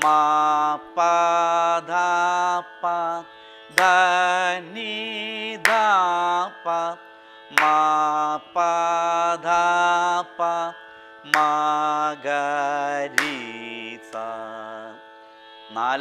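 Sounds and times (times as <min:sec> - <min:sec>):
sharp hand clap: 0:00.0 - 0:00.4, 0:03.7 - 0:04.2, 0:05.6 - 0:06.2, 0:07.5 - 0:07.9, 0:11.3 - 0:11.6, 0:13.2 - 0:13.6.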